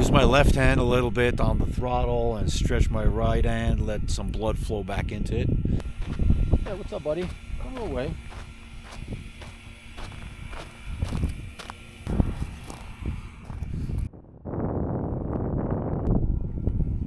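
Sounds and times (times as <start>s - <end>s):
wind on microphone: 0.0s - 17.0s
steady rushing noise: 5.7s - 14.1s.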